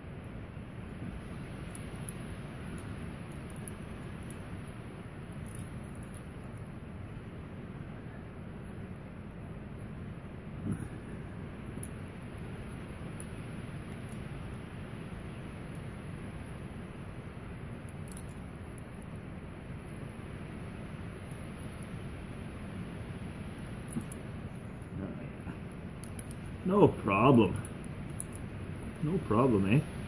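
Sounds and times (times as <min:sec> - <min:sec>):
low background hum: 0:00.0 - 0:30.0.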